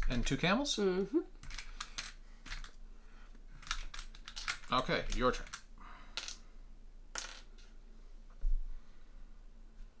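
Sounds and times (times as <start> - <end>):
game pieces clattering in plastic tray: 1.4 - 2.8, 3.6 - 6.4, 7.1 - 7.7.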